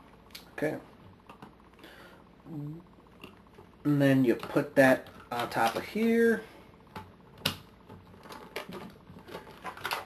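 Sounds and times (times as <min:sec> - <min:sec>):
plastic parts clicking together: 0:06.9 - 0:10.0.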